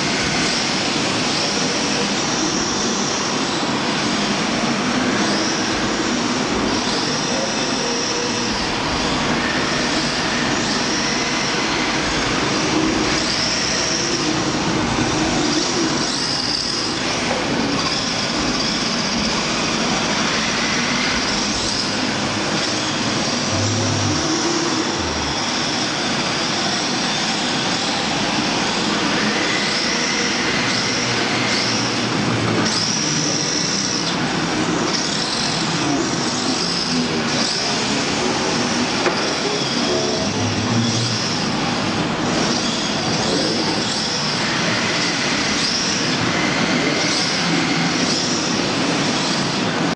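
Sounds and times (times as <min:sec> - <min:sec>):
electric motors whining: 0:00.0 - 0:49.9.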